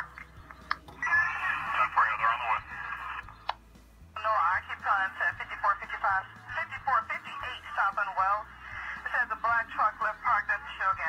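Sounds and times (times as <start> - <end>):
speech through phone speaker: 1.0 - 3.3, 4.2 - 11.0.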